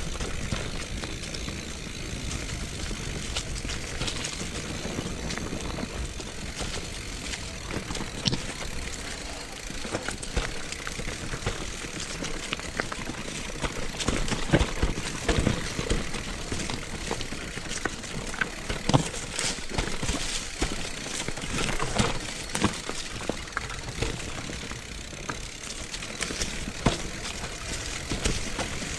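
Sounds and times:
bike knocking over roots: 0.0s - 28.9s
bike rattling: 0.0s - 28.9s
bike tyres rolling over leaves: 0.0s - 28.9s.

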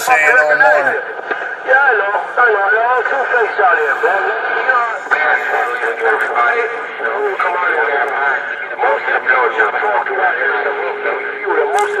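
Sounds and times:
steady hum: 0.0s - 12.0s
voices talking: 0.0s - 12.0s.

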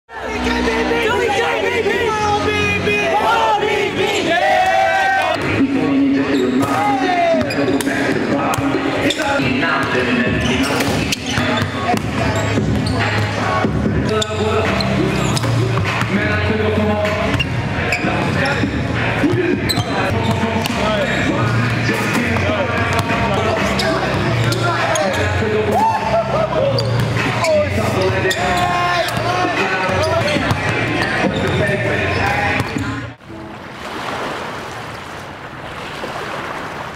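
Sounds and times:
music: 0.1s - 33.2s
voices: 0.1s - 33.2s
small waves on a beach: 33.3s - 36.9s.

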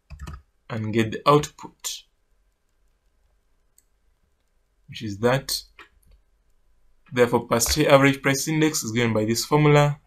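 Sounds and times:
man talking: 0.7s - 2.1s, 4.9s - 5.8s, 7.1s - 10.0s.

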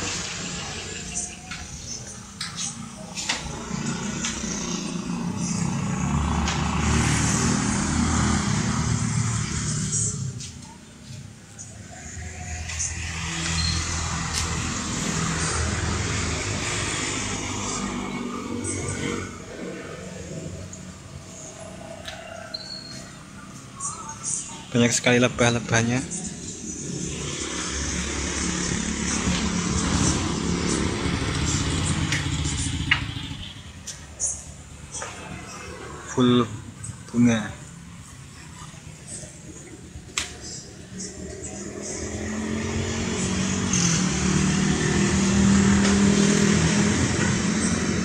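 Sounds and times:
motor engine running: 27.4s - 33.6s.

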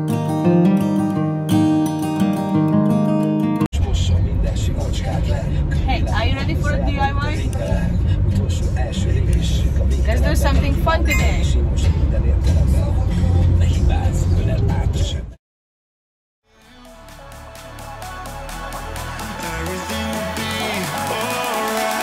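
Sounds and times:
strummed acoustic guitar music: 0.0s - 3.7s
road and engine rumble: 3.7s - 15.4s
voices: 3.8s - 11.8s.

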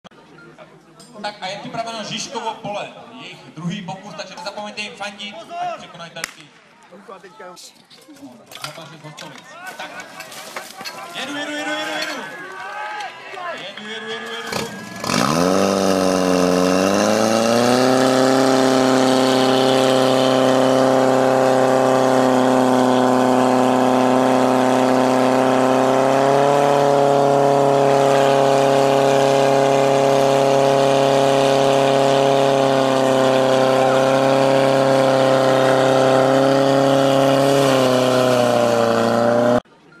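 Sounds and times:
fire pump engine running: 13.6s - 39.6s.

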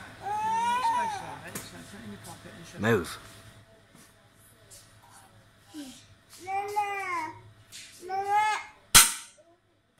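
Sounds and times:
sharp bang: 9.0s - 9.4s.

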